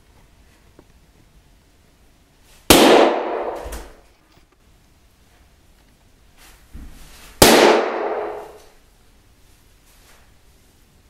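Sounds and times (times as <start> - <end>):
balloon bursting bang: 2.7 - 4.0, 7.4 - 8.6
room echo ringing: 2.7 - 4.0, 7.4 - 8.8.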